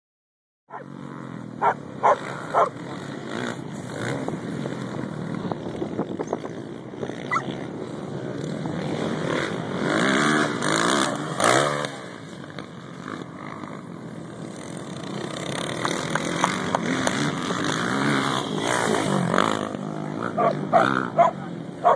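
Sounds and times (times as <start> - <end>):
motocross bikes engines revving: 0.7 - 21.9.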